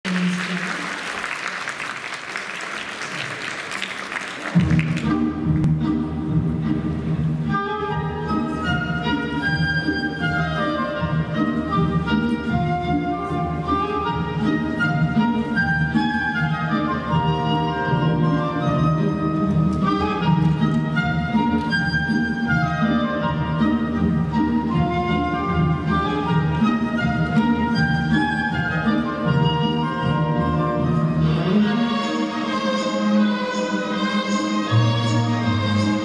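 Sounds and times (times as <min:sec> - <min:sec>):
audience applause: 0:00.0 - 0:05.2
bowed strings melody: 0:04.5 - 0:36.0.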